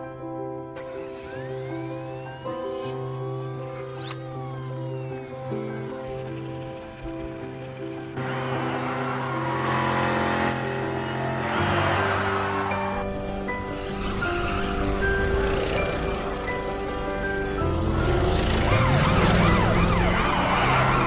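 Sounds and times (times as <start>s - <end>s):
music score of sustained notes: 0.0s - 21.0s
car tyres squealing: 1.1s - 21.0s.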